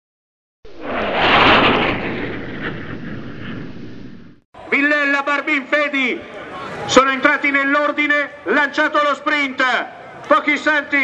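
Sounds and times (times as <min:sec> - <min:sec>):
whoosh with falling tone: 0:00.7 - 0:04.4.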